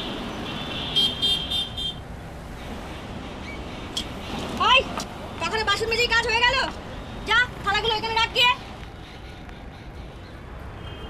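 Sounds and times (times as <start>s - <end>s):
street traffic noise: 0.0s - 11.0s.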